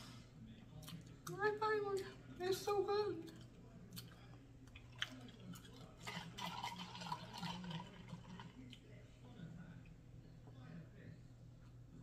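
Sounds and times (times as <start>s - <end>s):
wet chewing sounds: 0.7s - 2.2s, 3.2s - 8.9s.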